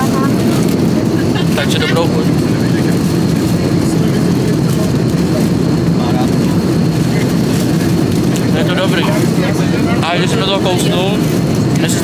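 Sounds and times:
airliner cabin drone: 0.0 - 12.0.

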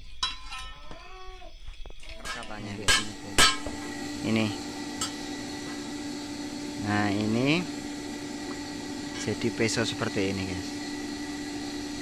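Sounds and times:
steel pieces clanking: 0.2 - 0.8.

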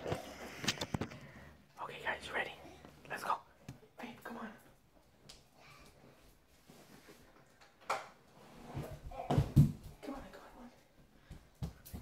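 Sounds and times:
person whispering: 1.8 - 4.6.

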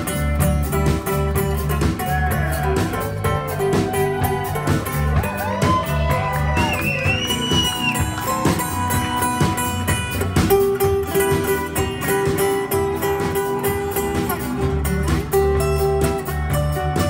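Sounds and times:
live rock band playing: 0.0 - 17.0.

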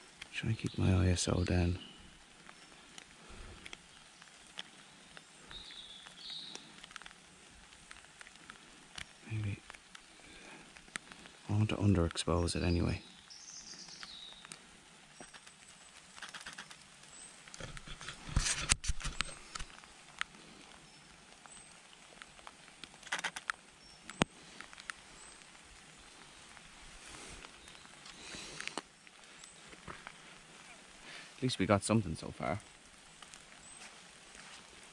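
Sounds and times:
light rain pattering: 0.0 - 34.9.

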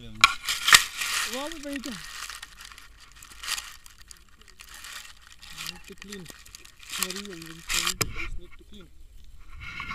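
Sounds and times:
grass rustling against camera: 0.0 - 9.9.

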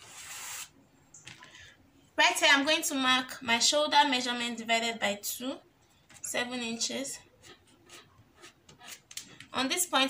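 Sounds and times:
chalk scratching on fabric: 7.4 - 9.1.

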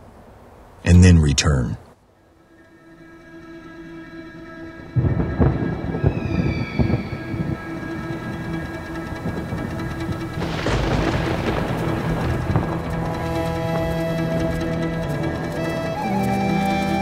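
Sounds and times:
sustained droning chord: 2.2 - 16.8
high tone sliding downward: 3.0 - 8.6.

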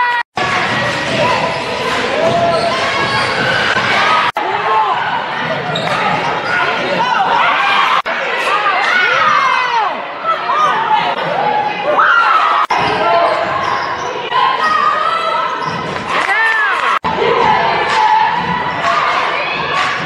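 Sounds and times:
echoing voices: 0.0 - 20.0.

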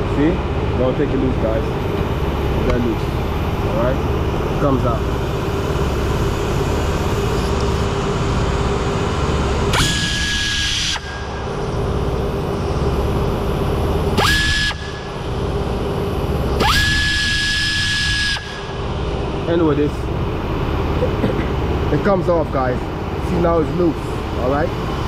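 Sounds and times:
steady low hum: 0.0 - 25.0
power ratchet whining: 5.2 - 19.7.

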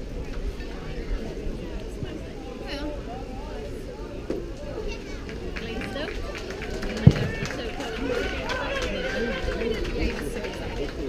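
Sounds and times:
spectators chatting: 0.0 - 11.0
baseball thumping into mitt: 7.0 - 7.6.

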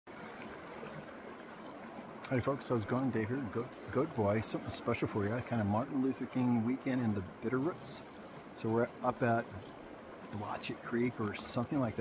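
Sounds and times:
creek water flowing: 0.1 - 12.0.

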